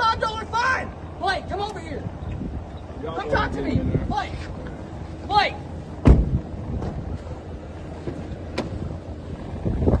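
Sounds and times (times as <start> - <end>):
wind buffeting microphone: 0.0 - 10.0
vehicle door shutting: 6.0 - 7.0.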